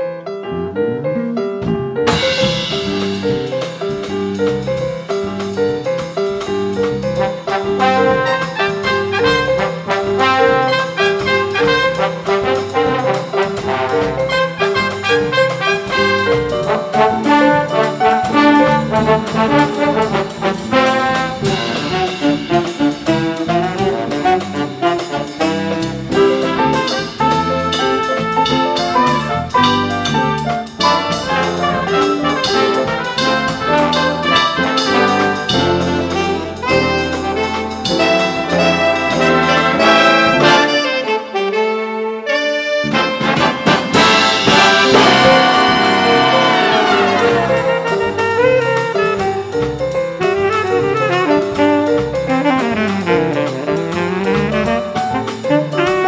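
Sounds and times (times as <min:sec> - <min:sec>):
jazz big band playing: 0:00.0 - 0:56.0
brass section: 0:07.2 - 0:49.5.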